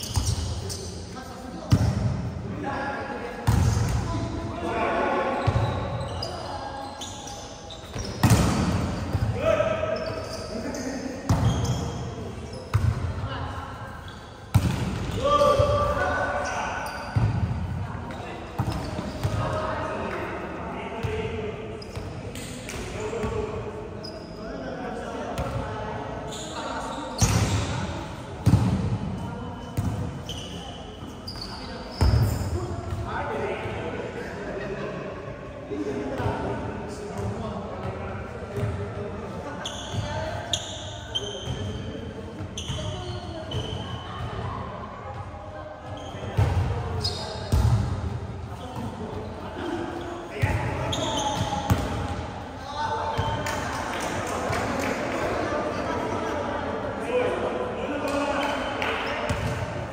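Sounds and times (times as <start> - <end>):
volleyball slaps and thuds: 8.2 - 8.9.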